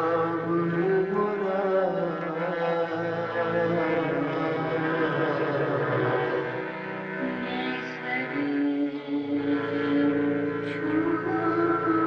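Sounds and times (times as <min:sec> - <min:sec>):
person singing long note: 0:07.2 - 0:12.0.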